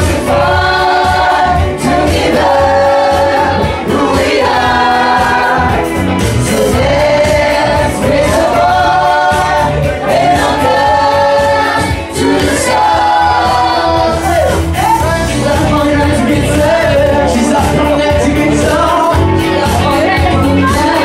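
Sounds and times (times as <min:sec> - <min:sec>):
music with bass and beat: 0:00.0 - 0:21.0
people singing: 0:00.0 - 0:21.0.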